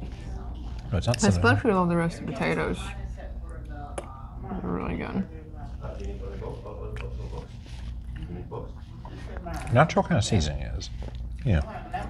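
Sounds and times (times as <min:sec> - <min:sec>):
chewing and mouth sounds: 0:05.8 - 0:10.0, 0:10.9 - 0:11.7.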